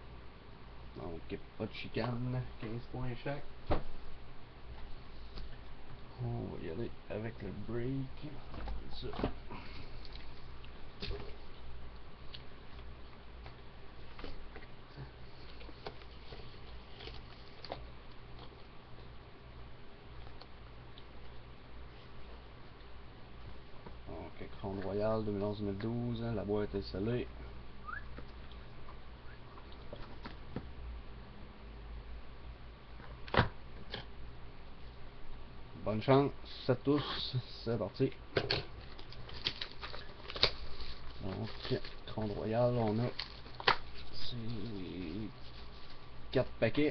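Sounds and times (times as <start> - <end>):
steady low hum: 0.0 - 46.9
cardboard and wrapper rustling: 38.7 - 46.4.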